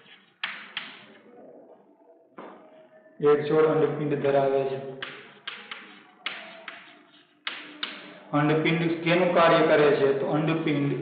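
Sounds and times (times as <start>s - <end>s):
chalk tapping and scraping on chalkboard: 0.0s - 1.2s, 5.0s - 8.2s.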